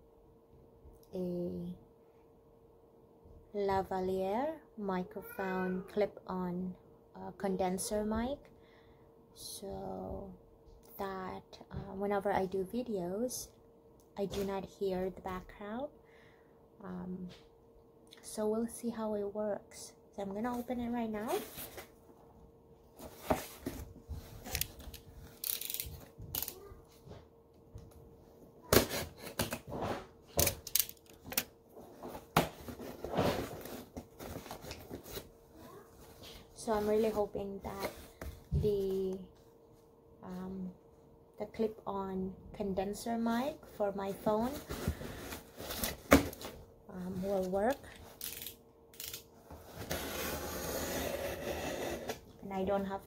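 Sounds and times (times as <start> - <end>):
cardboard box scraping and rustling: 49.5 - 52.2.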